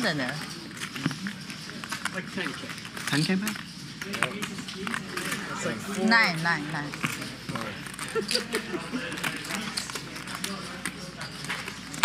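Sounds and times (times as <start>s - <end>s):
quiet table chatter: 0.0s - 12.0s
poker chips clicking: 0.1s - 5.4s, 6.4s - 12.0s.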